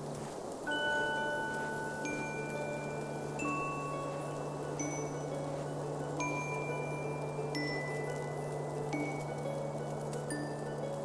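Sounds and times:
bright chime ringing: 0.7s - 9.5s.

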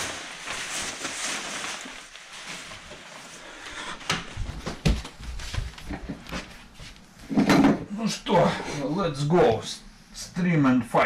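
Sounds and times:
man speaking: 7.9s - 11.0s.

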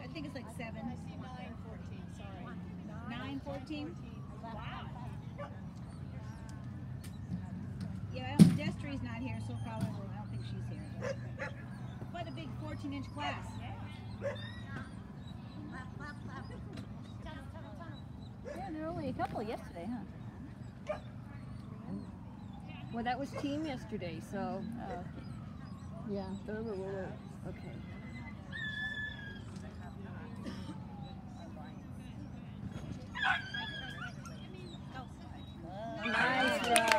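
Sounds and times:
faint background chatter: 0.0s - 36.9s
low background murmur: 0.0s - 36.9s
dog yelping: 10.4s - 16.6s, 20.8s - 21.1s, 33.1s - 36.5s
dog barking: 11.0s - 11.6s, 14.2s - 14.4s, 20.9s - 21.1s.

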